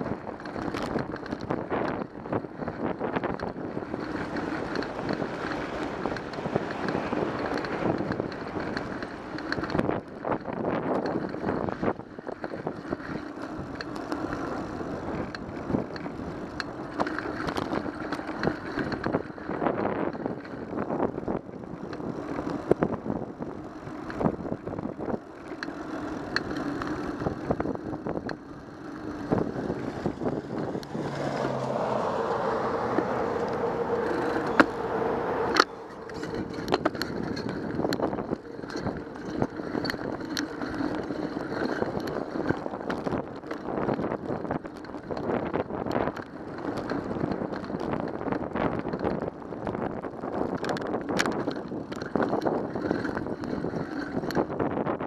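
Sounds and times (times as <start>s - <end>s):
bike knocks and rattles: 0.0s - 31.6s, 34.0s - 55.0s
bicycle tyres rumbling on asphalt: 0.0s - 55.0s
vehicle passing: 26.0s - 43.1s.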